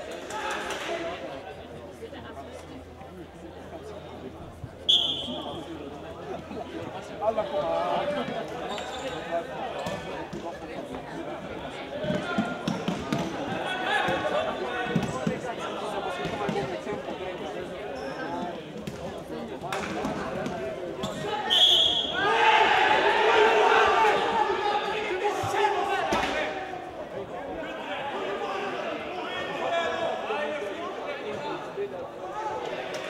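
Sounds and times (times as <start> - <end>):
high whistle blast: 4.9 - 5.5, 21.5 - 22.2
players shouting in a hall: 11.7 - 16.5, 21.0 - 33.0.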